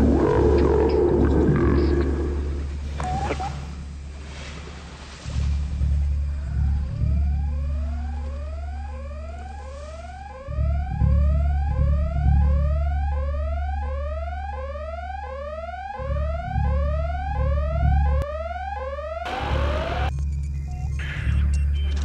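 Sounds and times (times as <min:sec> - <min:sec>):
deep rumble: 0:00.0 - 0:18.7
electronic whooping alarm: 0:06.8 - 0:20.1.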